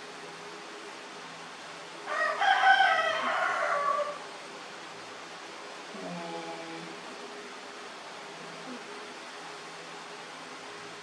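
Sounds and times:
rooster crowing: 2.0s - 4.3s.

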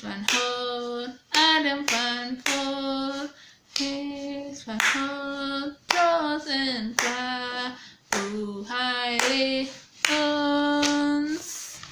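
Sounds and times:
woman singing a hymn: 0.0s - 11.9s
hand claps: 0.1s - 4.1s, 4.7s - 5.2s, 5.8s - 7.4s, 8.0s - 11.9s.

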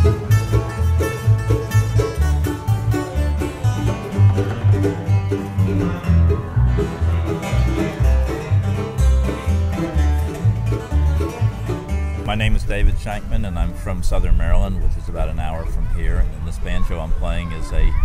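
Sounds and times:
banjo picking: 0.0s - 13.8s
bass line: 0.0s - 16.0s
bluegrass string band: 0.0s - 16.6s.

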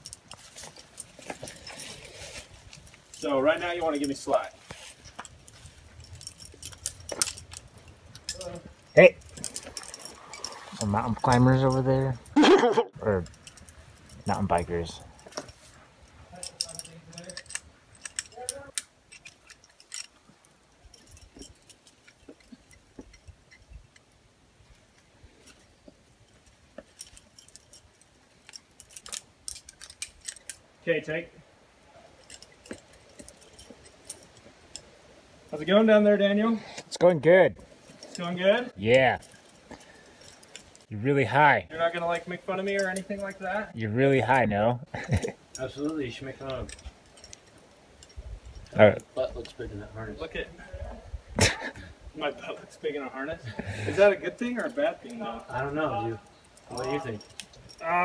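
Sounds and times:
metal climbing gear clinking: 0.0s - 58.0s.

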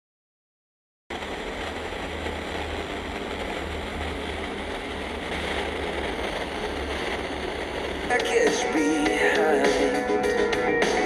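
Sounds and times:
radio static hiss: 1.1s - 11.0s.

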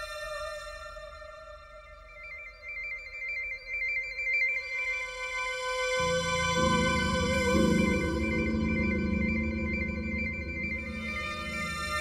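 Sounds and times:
held synth note: 6.0s - 12.0s
high warbling synth tone: 7.6s - 12.0s.

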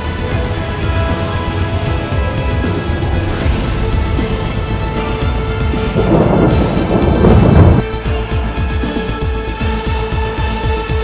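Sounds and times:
background music: 0.0s - 11.0s
thunder rumble: 3.5s - 7.9s.

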